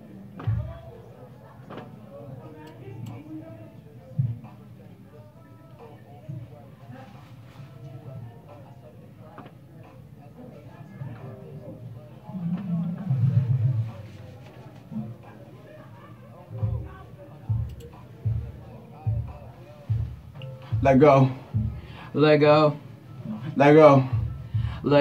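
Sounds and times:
hip-hop with rapped vocals: 16.4s - 25.0s.

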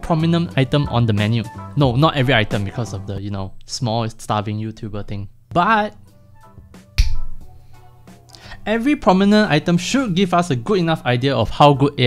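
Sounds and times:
soft background music: 0.0s - 12.0s
finger snap: 7.0s - 7.5s.

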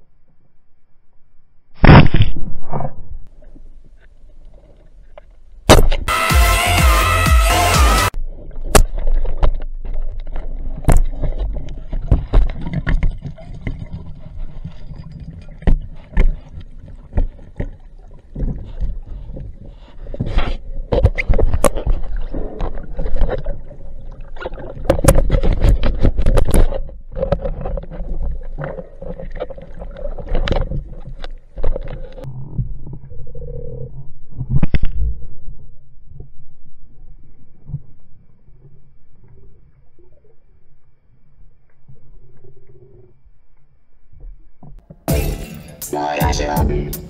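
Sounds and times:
loud music: 6.1s - 8.2s, 45.1s - 47.0s.

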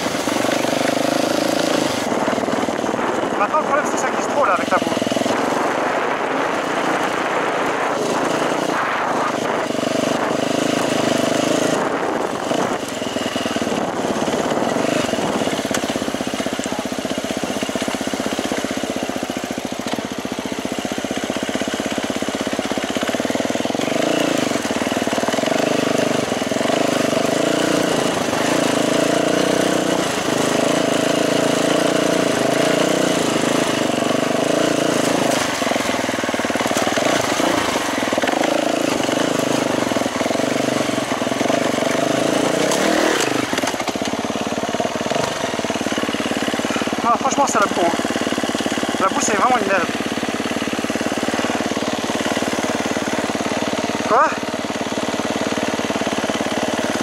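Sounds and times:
dirt bike engine running: 0.0s - 57.0s.

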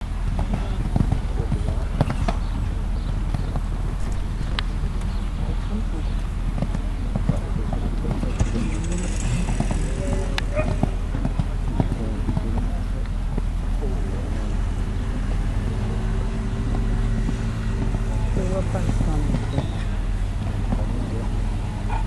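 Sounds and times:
horse hoofbeats on sand: 0.0s - 14.8s, 15.4s - 21.9s
low rumble: 0.0s - 22.0s
indistinct voices: 5.2s - 22.0s.

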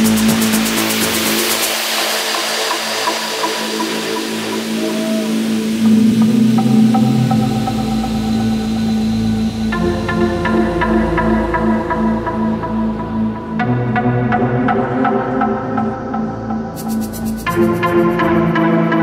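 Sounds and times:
techno music: 0.0s - 19.0s.

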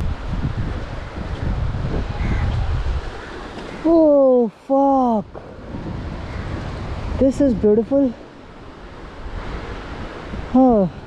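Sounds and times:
surf: 0.0s - 11.0s
wind buffeting microphone: 0.0s - 11.0s
person calling out: 10.5s - 11.0s.

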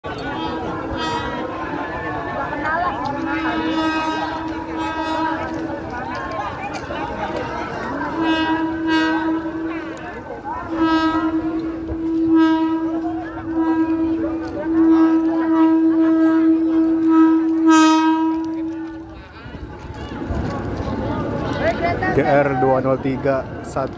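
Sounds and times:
people talking: 0.1s - 23.9s
train horn blasts: 0.8s - 2.0s, 3.0s - 5.9s, 8.0s - 19.1s.

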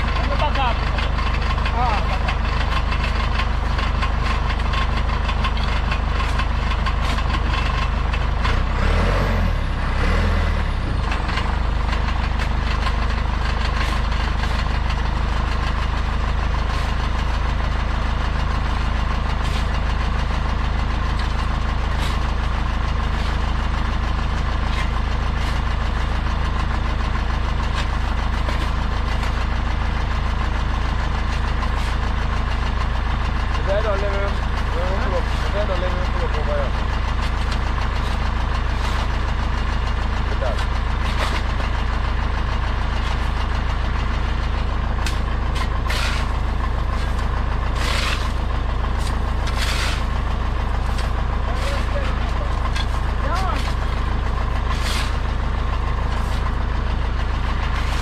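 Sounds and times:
earth-moving machine engine idling: 0.0s - 58.0s.

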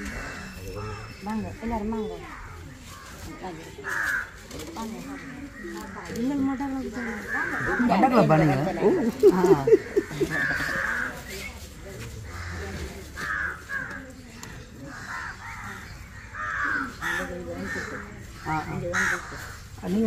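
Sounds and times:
crows cawing: 0.0s - 8.7s, 9.8s - 11.4s, 12.1s - 14.2s, 14.8s - 20.0s
people talking: 0.0s - 15.8s, 16.7s - 20.0s.

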